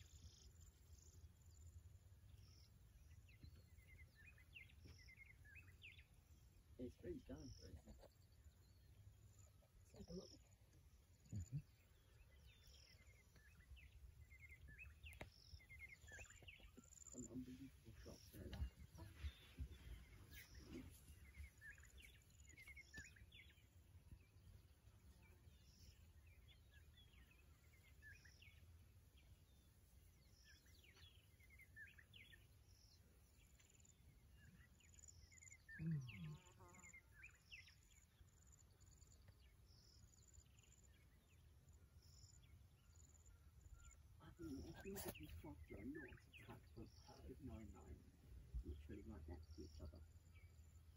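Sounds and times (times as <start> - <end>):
short low voice-like sound: 35.8 - 36.5.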